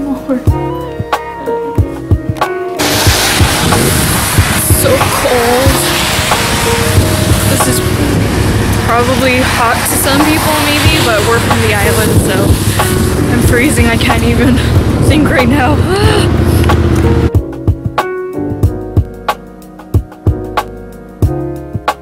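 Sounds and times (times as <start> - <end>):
background music: 0.0 - 22.0
road traffic: 2.8 - 17.4
wind buffeting microphone: 2.8 - 17.4.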